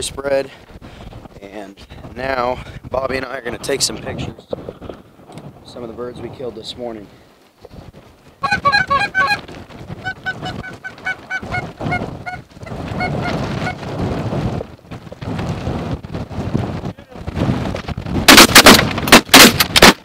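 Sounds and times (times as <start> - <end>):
wind rumble on microphone: 0.0 - 19.9
geese honking: 8.4 - 13.8.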